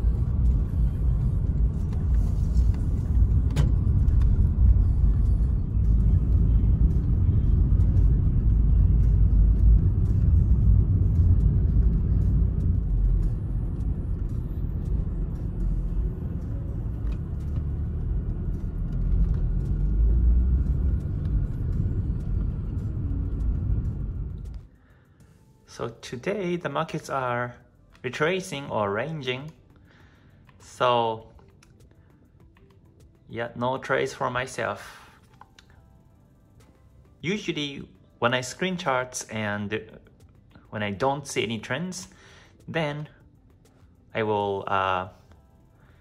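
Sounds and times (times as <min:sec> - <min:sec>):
car driving rumble from inside: 0:00.0 - 0:24.7.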